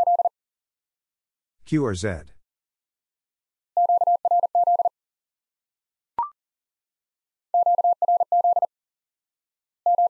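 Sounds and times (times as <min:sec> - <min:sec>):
morse code tone: 0:00.0 - 0:00.3, 0:07.6 - 0:08.7.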